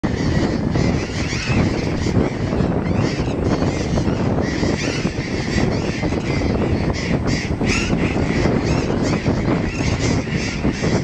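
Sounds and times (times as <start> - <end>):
parrots calling: 0.1 - 11.0.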